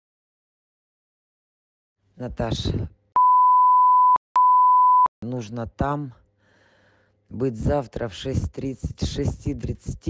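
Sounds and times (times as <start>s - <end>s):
recorded voice message: 2.2s - 2.9s, 7.4s - 10.0s
censor bleep: 3.2s - 5.1s.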